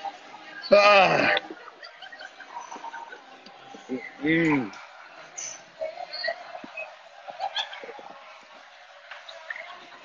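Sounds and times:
indistinct background voices: 0.0 - 10.0.

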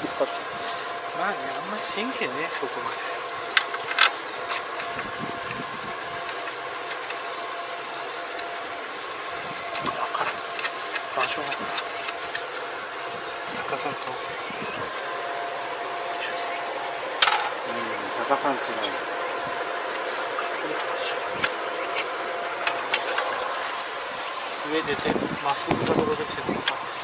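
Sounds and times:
engine running: 0.0 - 27.0.

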